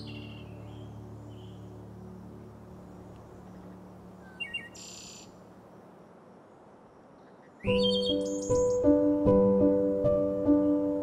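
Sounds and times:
bird chirping: 0:00.0 - 0:05.4, 0:06.5 - 0:09.2
buzzy bird call: 0:07.7 - 0:09.0.

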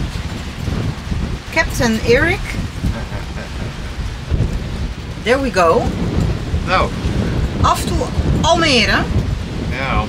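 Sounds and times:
steady rushing hiss: 0:00.0 - 0:10.0
wind buffeting microphone: 0:00.0 - 0:10.0.

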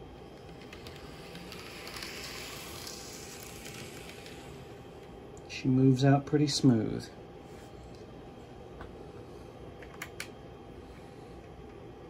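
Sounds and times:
model train motor whirring: 0:00.0 - 0:05.0.

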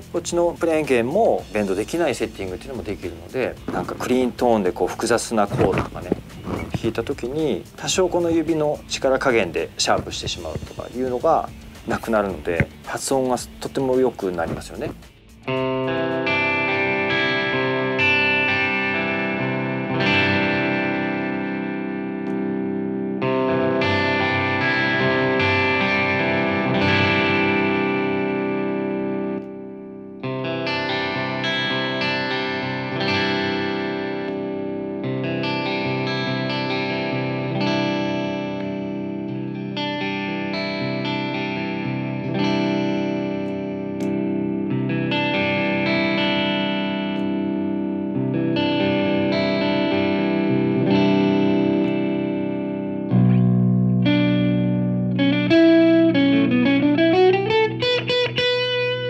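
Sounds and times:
overdriven electric guitar chords: 0:00.0 - 0:00.2, 0:01.4 - 0:13.6, 0:14.4 - 0:59.0.

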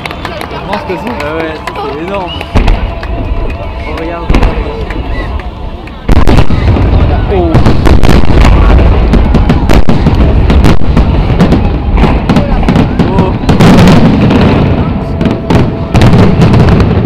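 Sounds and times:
fireworks cracks and booms: 0:00.0 - 0:17.0.

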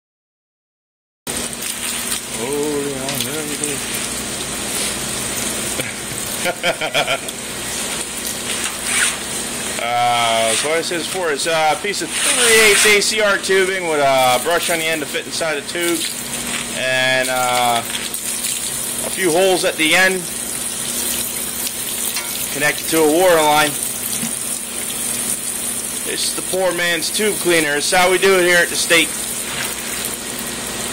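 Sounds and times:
water spraying and splashing: 0:01.3 - 0:30.9
hiss of water spray: 0:28.8 - 0:30.2.

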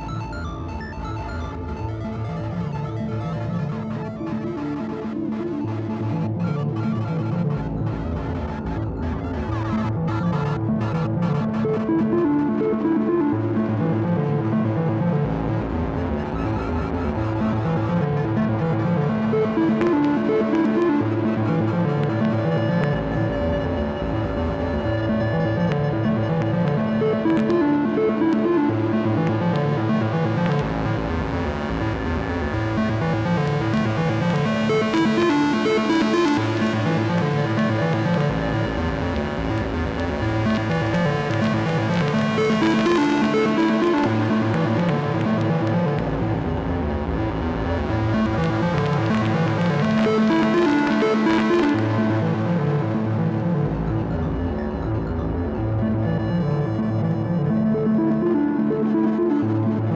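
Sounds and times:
analog synthesizer music: 0:00.0 - 0:59.9.

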